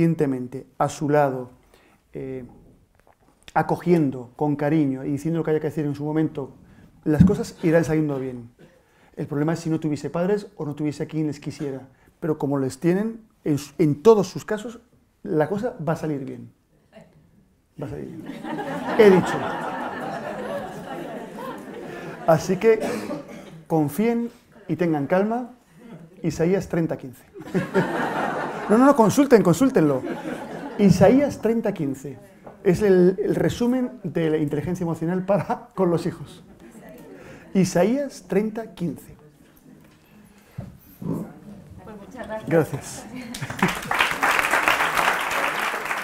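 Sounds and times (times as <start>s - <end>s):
person speaking: 17.8s - 27.8s, 28.5s - 40.3s, 41.0s - 43.3s
audience murmuring: 18.1s - 23.7s.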